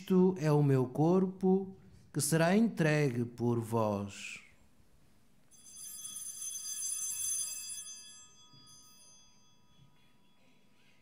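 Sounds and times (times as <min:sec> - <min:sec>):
high bright bell ringing: 0:05.5 - 0:11.0.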